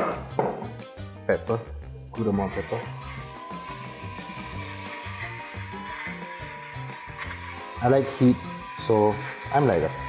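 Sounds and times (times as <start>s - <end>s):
background music with bass line: 0.0s - 10.0s
electric pepper mill grinding: 2.2s - 10.0s.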